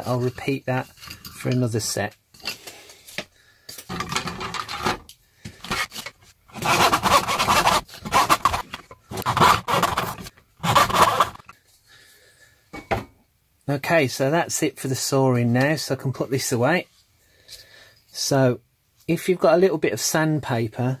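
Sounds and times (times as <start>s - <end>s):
hand saw cutting wood: 5.6s - 11.5s.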